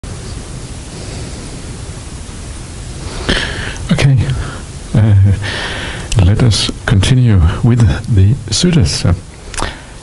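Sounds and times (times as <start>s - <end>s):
recording hiss: 0.0s - 10.0s
man's voice: 3.8s - 5.5s, 6.1s - 9.2s.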